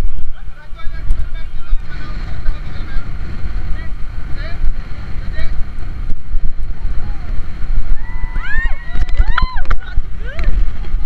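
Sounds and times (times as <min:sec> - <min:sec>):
rush of water: 0:00.0 - 0:11.0
wind buffeting microphone: 0:00.0 - 0:11.0.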